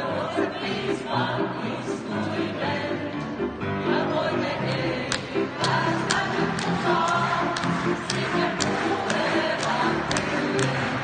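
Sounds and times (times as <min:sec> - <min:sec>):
group of people singing: 0:00.0 - 0:11.0.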